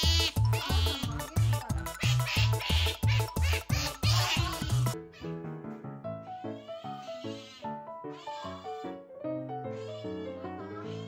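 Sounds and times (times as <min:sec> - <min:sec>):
background music with thumping beat: 0:00.0 - 0:05.0
otter squealing: 0:00.0 - 0:05.3.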